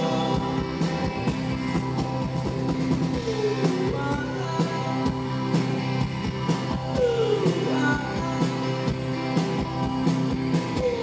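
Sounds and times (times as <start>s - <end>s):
drum kit steady beat: 0.0s - 11.0s
electric guitar chords: 0.0s - 11.0s.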